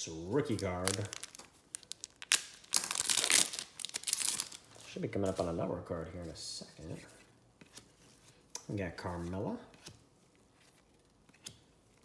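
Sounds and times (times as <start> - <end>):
foil wrapper crinkling: 0.4 - 4.8
foil wrapper tearing: 0.5 - 4.6.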